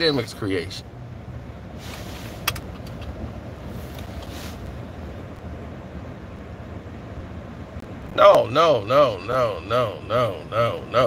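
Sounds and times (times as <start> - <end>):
car cabin rumble: 1.1 - 11.0.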